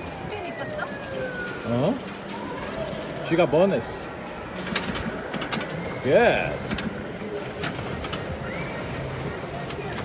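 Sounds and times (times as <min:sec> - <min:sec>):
arcade background din: 0:00.0 - 0:10.0.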